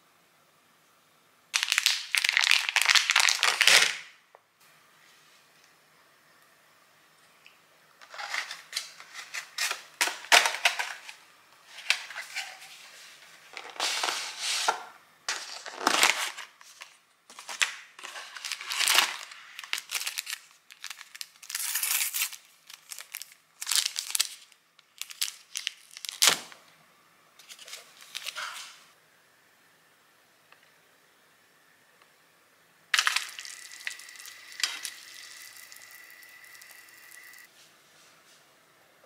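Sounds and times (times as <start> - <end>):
plastic packaging crackling: 1.6 - 4.2, 15.3 - 26.6, 33.0 - 37.4.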